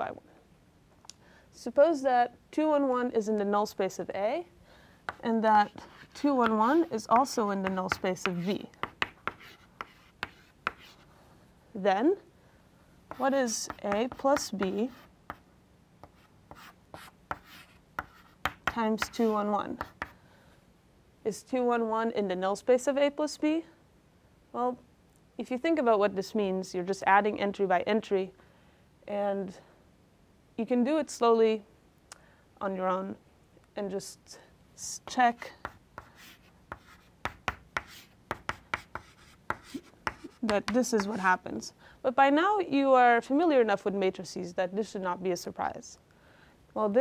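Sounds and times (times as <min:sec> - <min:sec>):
chalk writing on blackboard: 0:05.1 - 0:11.1, 0:13.1 - 0:20.2, 0:35.6 - 0:41.3.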